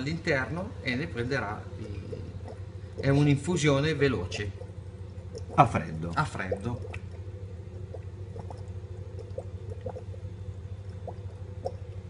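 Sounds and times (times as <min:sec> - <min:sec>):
dry ice bubbling in liquid: 0:00.0 - 0:12.0
low hum: 0:00.0 - 0:12.0.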